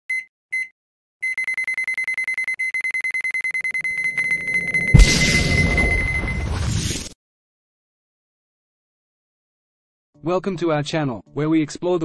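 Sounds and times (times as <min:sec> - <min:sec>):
high electronic timer beeps: 0:00.1 - 0:06.5.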